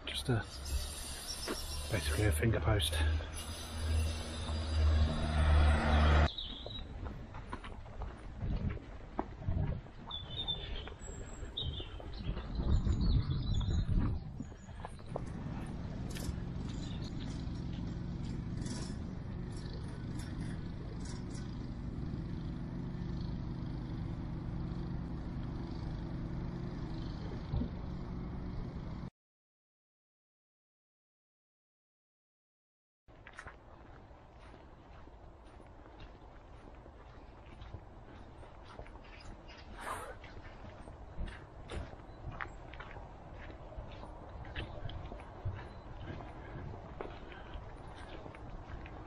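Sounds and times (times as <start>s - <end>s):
birds chirping: 0.0s - 29.0s, 34.4s - 49.0s
low traffic hum: 0.0s - 29.1s, 33.1s - 49.0s
loud vehicle passing: 0.5s - 6.4s, 15.0s - 29.1s.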